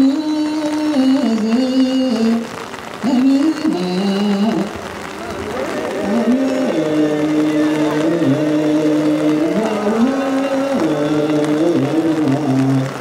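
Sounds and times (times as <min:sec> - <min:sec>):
man chanting through microphone: 0:00.0 - 0:13.0.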